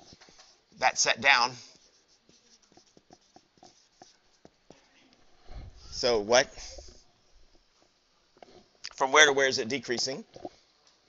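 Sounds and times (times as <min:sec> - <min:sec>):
pen tapping while writing: 0:02.3 - 0:04.6.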